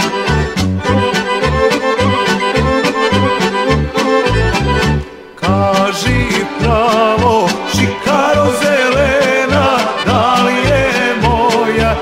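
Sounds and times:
pulsing bass and chord beat: 0:00.0 - 0:08.5
accordion accompaniment: 0:00.0 - 0:12.0
male vocal group singing: 0:05.4 - 0:12.0.

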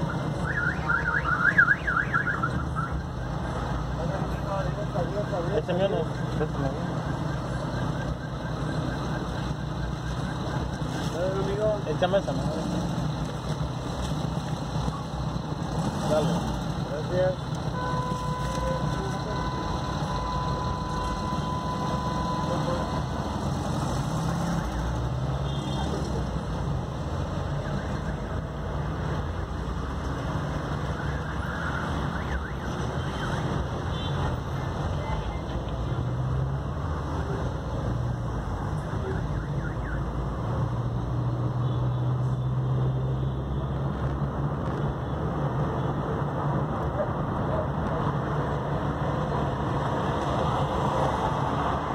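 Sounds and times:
car engine and road noise: 0:00.0 - 0:51.9.

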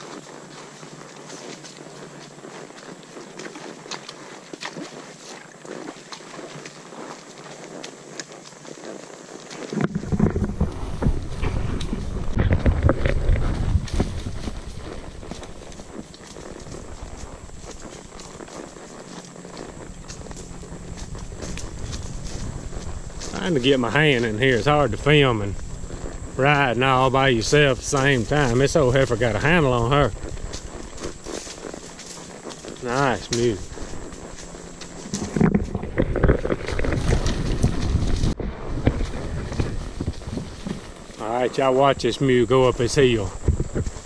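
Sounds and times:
mule hooves on leafy ground: 0:00.0 - 0:44.0.

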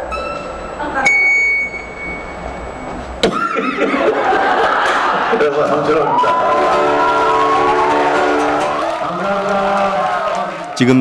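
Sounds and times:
guitar note plucked: 0:00.0 - 0:03.5.

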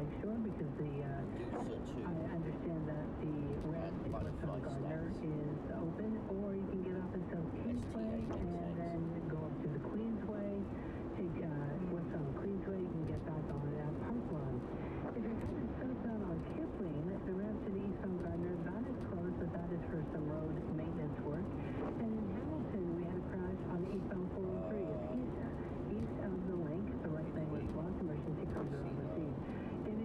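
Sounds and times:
voice talking on car radio: 0:00.0 - 0:30.0.

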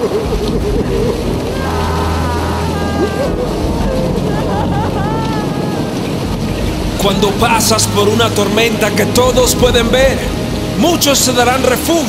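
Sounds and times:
low rumble: 0:00.0 - 0:11.8
rain and wind rush: 0:00.0 - 0:12.0.

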